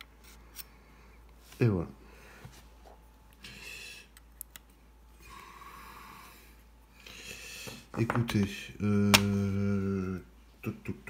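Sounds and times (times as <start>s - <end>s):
faint breathing: 2.0s - 4.2s, 5.1s - 8.0s.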